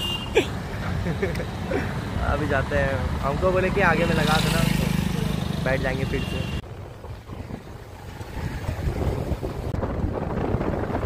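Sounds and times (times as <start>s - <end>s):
road and engine rumble: 0.0s - 11.0s
wind buffeting microphone: 6.6s - 11.0s.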